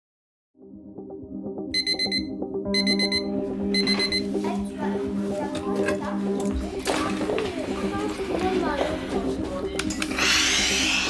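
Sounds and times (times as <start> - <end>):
alarm clock rapid beeps: 1.8 - 4.3.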